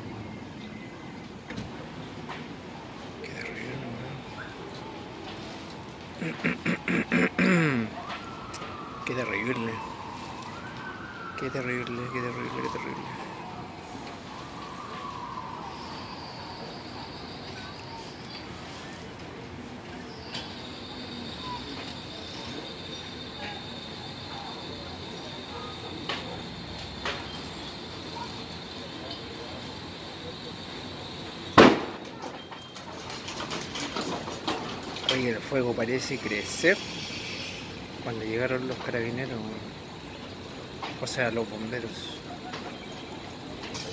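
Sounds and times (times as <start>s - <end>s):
steady background noise: 0.0s - 43.9s
emergency vehicle siren wailing: 2.8s - 36.8s, 37.7s - 43.9s
crackling pops of a fire: 4.7s - 12.1s, 13.0s - 16.2s, 26.0s - 27.5s, 31.5s - 35.2s.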